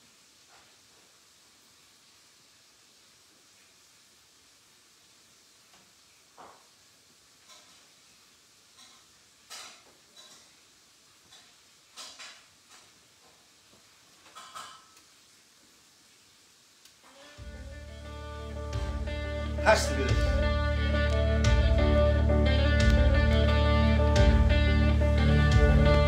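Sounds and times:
music with guitar from record: 17.1 - 26.0.

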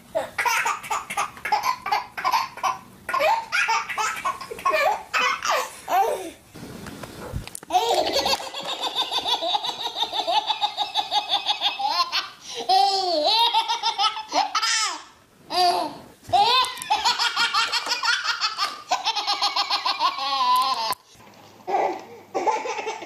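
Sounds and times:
baby belly laughs: 0.2 - 6.2, 7.7 - 15.8, 16.4 - 21.0, 21.7 - 23.0
baby laughing: 0.2 - 6.3, 7.7 - 21.0, 21.7 - 23.0.

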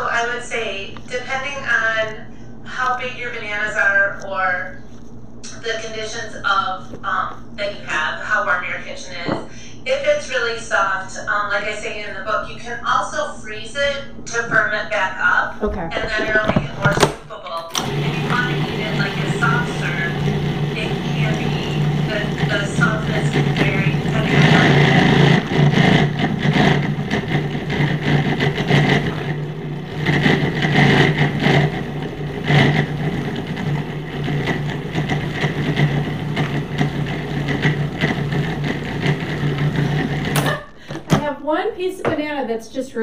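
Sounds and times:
food processor motor running: 17.7 - 41.2.

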